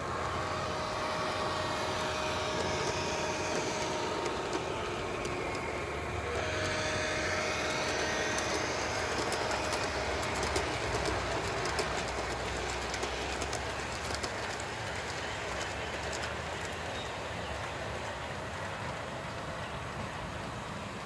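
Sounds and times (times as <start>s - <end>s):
model train running on track: 0.0s - 21.0s
sharp rail clicks: 0.1s - 20.1s.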